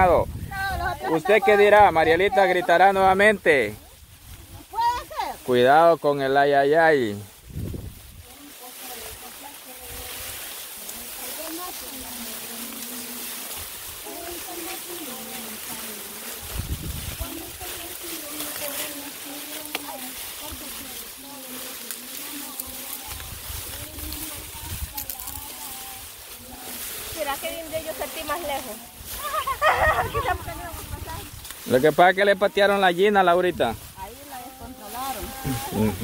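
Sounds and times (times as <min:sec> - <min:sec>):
grass and cane rustling: 0:00.0 - 0:36.0.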